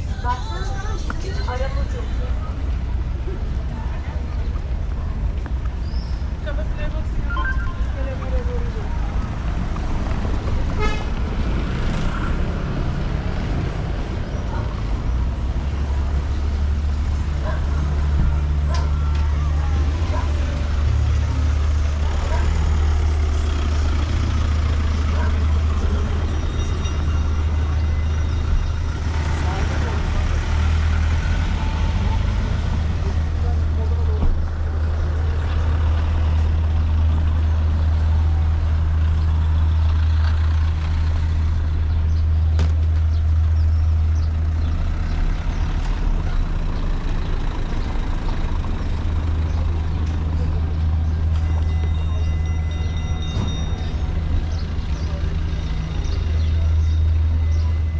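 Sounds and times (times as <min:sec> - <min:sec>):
car and truck engines: 0:00.0 - 0:57.9
low traffic rumble: 0:00.0 - 0:57.9.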